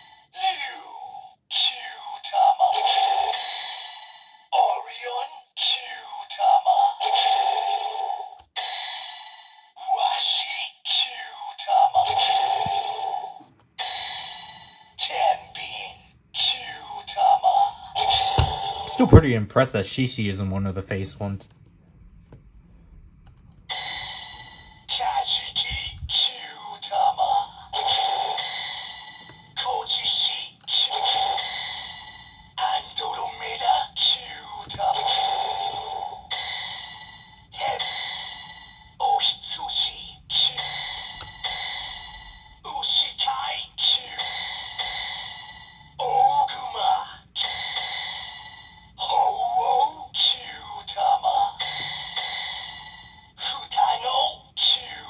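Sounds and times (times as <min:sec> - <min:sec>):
toy electronic voice calls: 0:00.4 - 0:19.2, 0:23.7 - 0:42.0, 0:42.6 - 0:48.4, 0:49.0 - 0:55.0.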